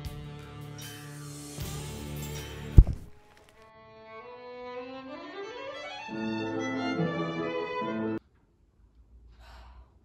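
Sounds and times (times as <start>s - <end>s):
violin music: 3.7s - 8.2s
soft breathy sigh: 9.3s - 10.0s.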